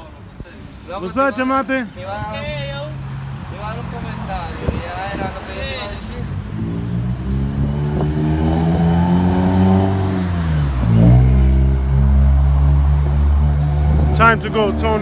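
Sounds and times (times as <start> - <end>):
vehicle engine revving: 6.4 - 15.0.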